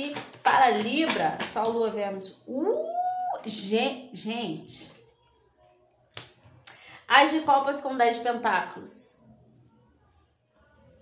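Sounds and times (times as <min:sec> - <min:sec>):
cards snapping clicks: 0:06.1 - 0:06.8.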